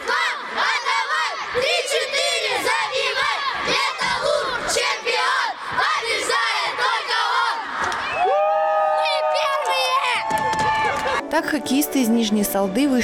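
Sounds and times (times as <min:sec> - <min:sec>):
boys shouting and chanting: 0:00.0 - 0:08.2
boys cheering: 0:07.4 - 0:11.2.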